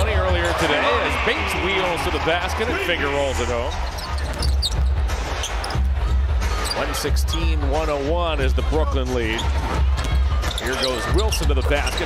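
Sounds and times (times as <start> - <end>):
sneaker squeaks: 3.7 - 5.9, 6.5 - 7.5, 9.3 - 12.0.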